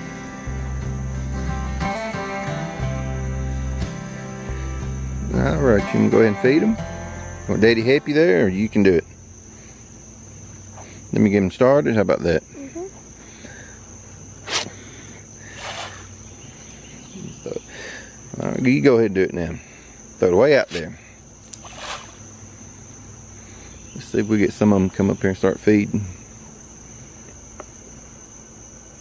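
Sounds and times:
crickets trilling: 0.0s - 29.0s
pellets splashing on water: 15.5s - 16.1s, 21.5s - 22.3s.

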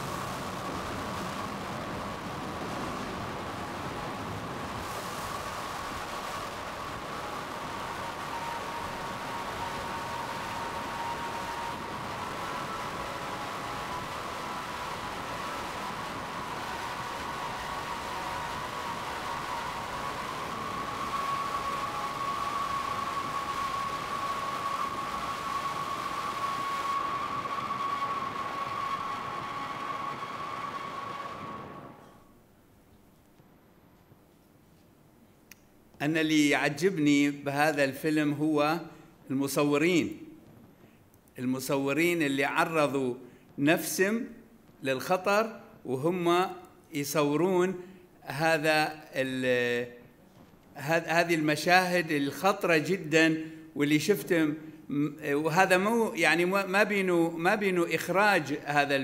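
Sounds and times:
sustained high tone: 2.6s - 32.2s.

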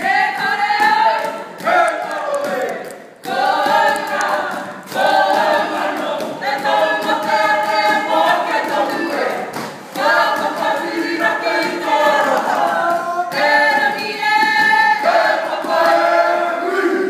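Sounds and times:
group singing in unison: 0.0s - 17.0s.

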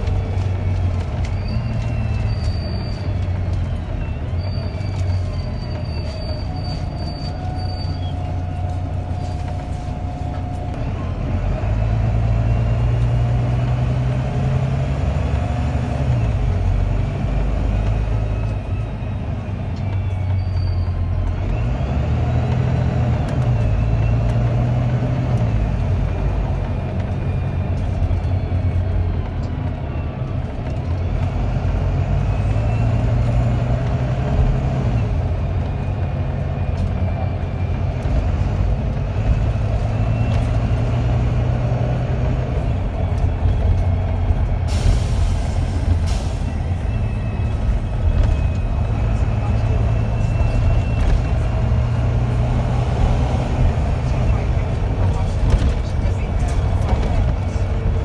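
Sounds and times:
bus diesel engine: 0.0s - 58.0s.

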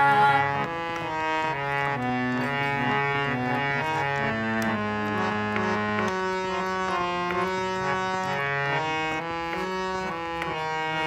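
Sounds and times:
harmonium playing melody: 0.0s - 11.0s.

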